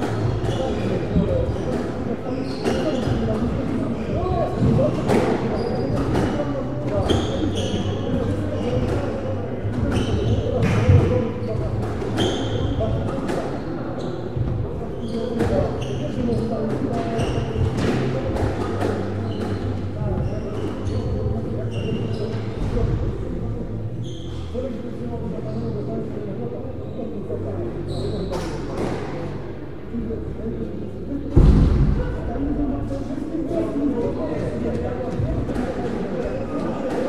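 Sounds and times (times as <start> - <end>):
hum of voices: 0.0 - 37.0
sneakers squeaking on wooden floor: 0.1 - 3.6, 4.6 - 9.2, 9.8 - 22.7, 24.0 - 24.6, 27.8 - 29.0
loud thump: 31.3 - 32.5.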